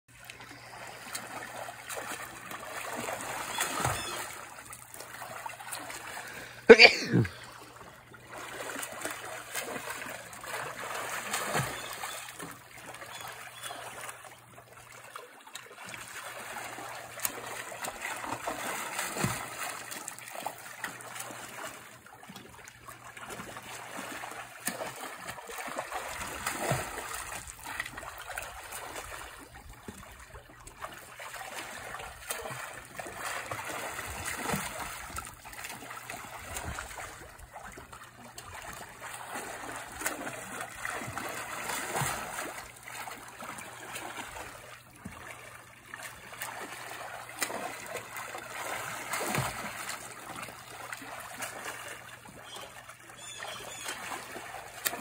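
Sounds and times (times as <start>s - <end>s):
water splashing and churning: 0.1s - 55.0s.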